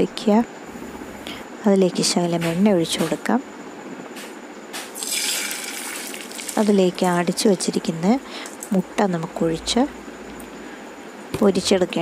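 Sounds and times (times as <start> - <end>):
egg sizzling in hot oil: 5.0 - 6.7.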